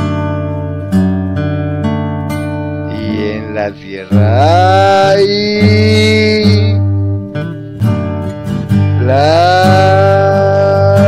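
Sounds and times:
acoustic guitar: 0:00.0 - 0:11.0
singer holding long note: 0:02.8 - 0:06.9, 0:09.0 - 0:11.0.

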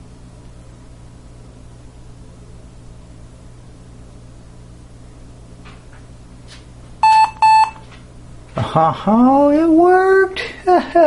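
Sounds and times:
steady low hum: 0:00.0 - 0:11.0
laptop beeping: 0:07.0 - 0:07.8.

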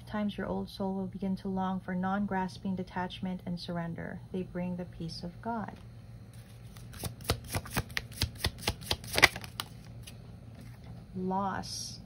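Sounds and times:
cards being shuffled: 0:06.3 - 0:10.8.

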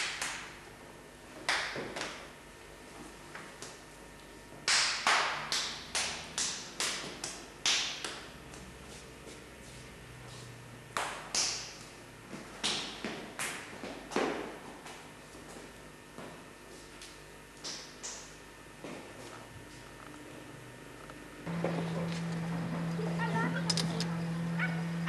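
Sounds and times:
sharp knocks with room echo: 0:01.5 - 0:02.2, 0:04.6 - 0:08.3.

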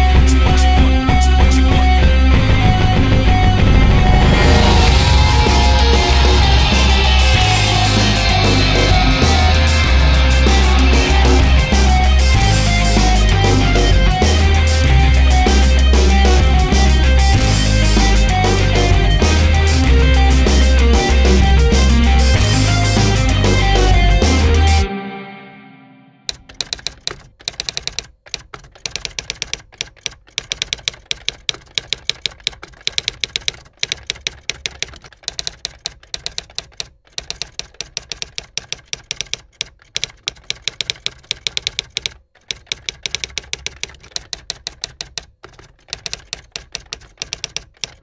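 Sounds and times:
music chord: 0:02.1 - 0:26.3
typewriter keys clacking: 0:26.3 - 0:48.0.

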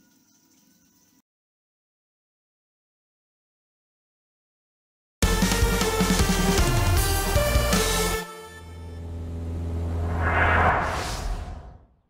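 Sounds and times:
background music: 0:05.2 - 0:09.5
whoosh rising in pitch: 0:09.1 - 0:12.0.

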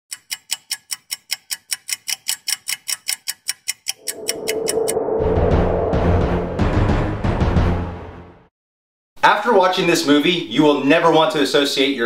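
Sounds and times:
rapid clock ticking: 0:00.1 - 0:04.1.

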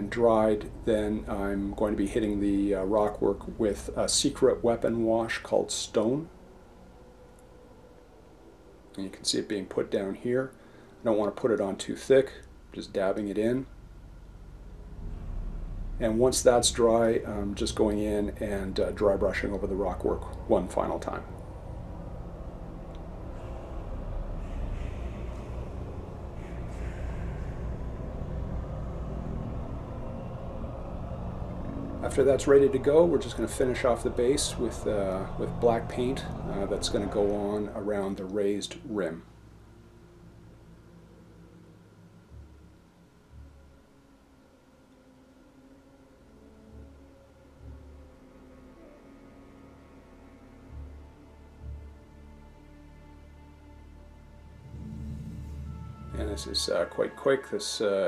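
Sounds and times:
low background rumble: 0:00.0 - 0:57.0
faint music with sustained notes: 0:00.0 - 0:58.0.

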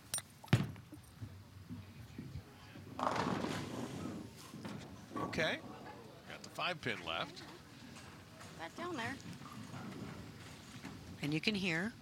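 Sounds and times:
bowling ball rolling: 0:02.9 - 0:05.8
bowling pins crashing: 0:03.0 - 0:04.2.

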